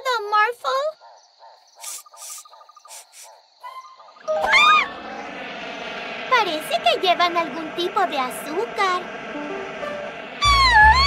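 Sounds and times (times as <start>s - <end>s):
faint repeated chirping calls: 0.9s - 4.8s
loud swooping cry: 4.4s - 5.1s.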